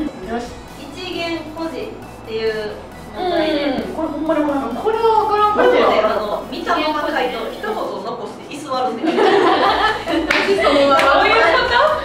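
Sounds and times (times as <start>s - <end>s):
young women laughing: 9.0s - 12.0s
hands clapping: 10.2s - 11.4s.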